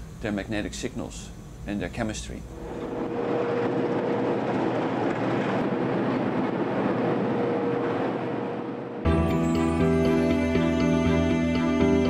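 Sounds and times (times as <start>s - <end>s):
faint steady hum: 0.0s - 9.1s
machinery rumble: 2.4s - 9.4s.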